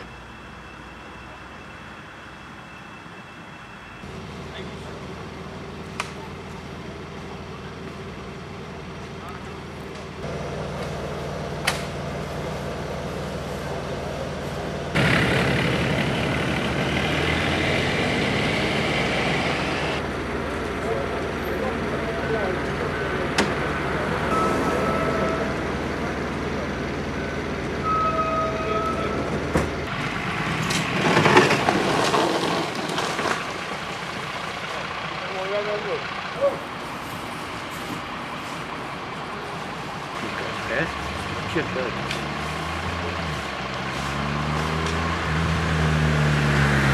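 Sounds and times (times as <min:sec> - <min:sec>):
emergency vehicle engines idling: 0:00.0 - 0:46.0
indistinct voices talking: 0:13.5 - 0:29.8, 0:33.8 - 0:44.0.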